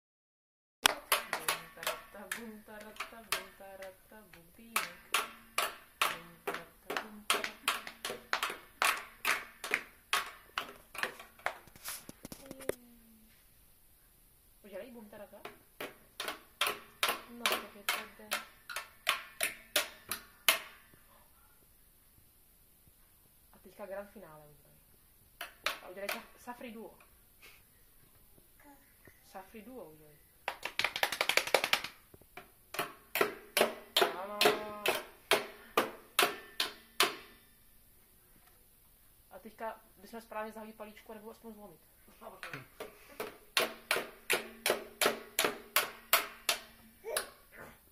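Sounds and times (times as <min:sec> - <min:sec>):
plastic toy drum beaten: 0:00.8 - 0:11.6, 0:15.4 - 0:21.0, 0:31.0 - 0:37.4, 0:42.4 - 0:46.8.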